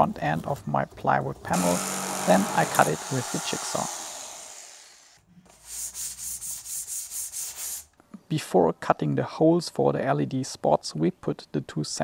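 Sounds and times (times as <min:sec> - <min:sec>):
hand sanding plywood edge: 0:01.6 - 0:07.9.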